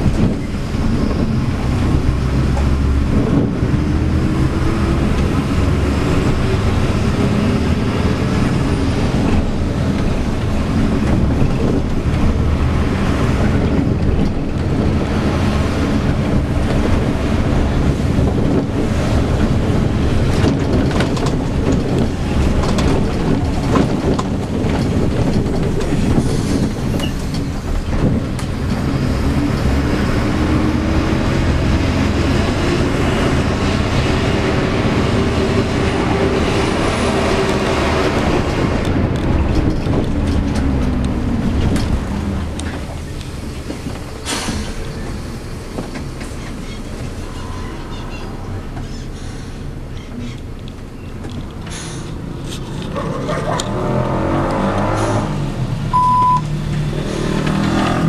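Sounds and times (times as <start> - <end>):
bus diesel engine running: 0.0 - 58.0
road noise: 0.0 - 58.0
body clicks and rattles: 8.3 - 15.2, 15.9 - 29.1, 37.4 - 44.9, 49.9 - 54.9.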